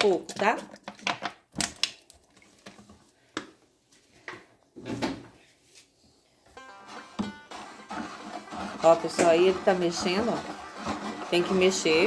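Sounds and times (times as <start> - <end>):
plastic bottles clattering: 0.0 - 3.0, 6.7 - 12.0
stirring stick knocking on bucket: 6.6 - 12.0
oil pouring: 6.8 - 11.3.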